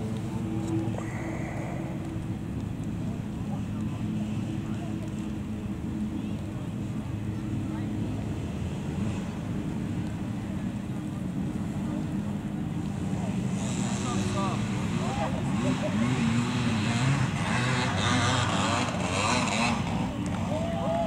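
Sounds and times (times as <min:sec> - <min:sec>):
people talking: 0:03.0 - 0:17.2.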